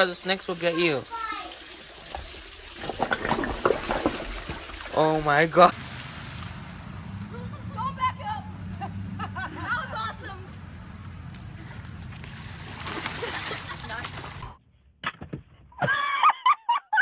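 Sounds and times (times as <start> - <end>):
running water rushing: 0.0 - 6.8.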